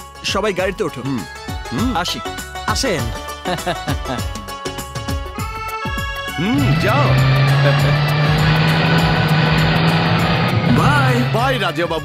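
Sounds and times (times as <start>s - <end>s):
background music: 0.0s - 12.0s
car engine running: 6.4s - 12.0s
road noise: 6.4s - 12.0s.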